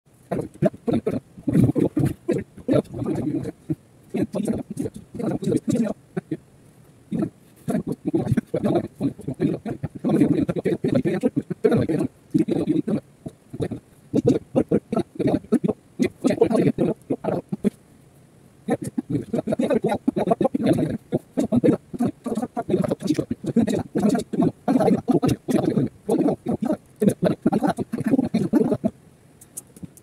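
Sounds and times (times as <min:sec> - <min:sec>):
garbled fast-chattering voice: 0:00.2 - 0:06.4, 0:07.1 - 0:17.8, 0:18.7 - 0:30.0
person talking quickly: 0:00.3 - 0:06.4, 0:07.1 - 0:17.8, 0:18.7 - 0:30.0.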